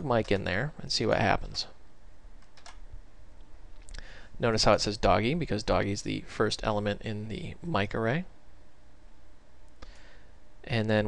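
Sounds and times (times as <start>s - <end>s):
low steady hum: 0.0s - 11.0s
faint keyboard keystrokes: 2.4s - 2.8s.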